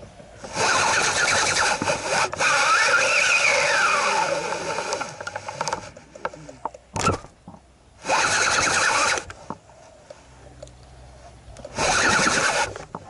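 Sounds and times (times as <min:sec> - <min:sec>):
fishing reel whirring: 0:00.4 - 0:05.9, 0:08.0 - 0:09.3, 0:11.7 - 0:12.9.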